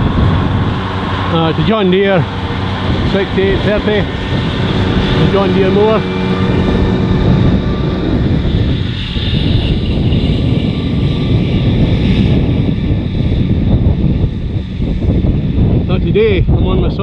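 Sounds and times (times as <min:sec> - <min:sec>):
mower running: 0:00.0 - 0:15.9
tractor engine drone: 0:00.0 - 0:17.0.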